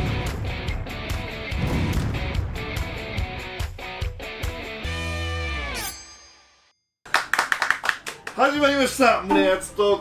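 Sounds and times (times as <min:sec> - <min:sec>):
people clapping: 0:07.1 - 0:08.8.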